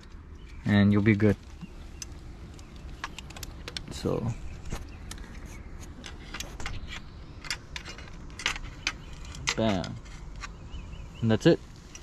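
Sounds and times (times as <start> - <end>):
light clicks of wiring connectors: 1.3 - 10.6.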